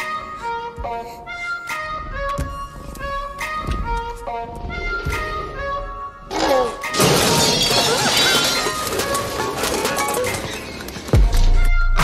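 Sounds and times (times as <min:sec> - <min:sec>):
shattering crash: 0:06.9 - 0:11.0.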